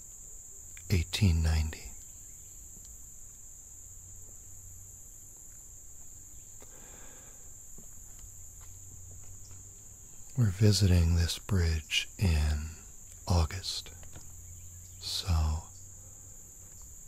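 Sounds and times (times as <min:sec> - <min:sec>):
insects chorus: 0:00.0 - 0:17.0
footsteps on wooden planks: 0:07.7 - 0:09.8.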